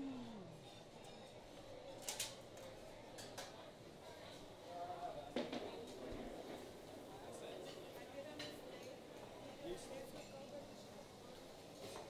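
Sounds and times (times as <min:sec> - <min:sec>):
person humming: 0:00.0 - 0:00.6
faint restaurant background: 0:00.0 - 0:12.0.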